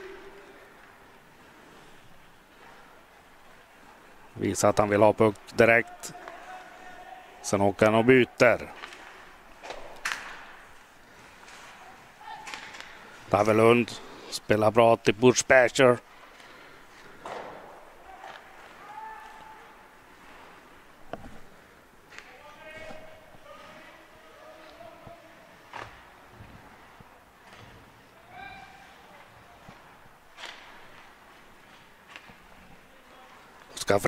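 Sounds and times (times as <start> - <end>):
stick and puck clacks: 8.7 - 10.7
skates on ice: 16.0 - 33.8.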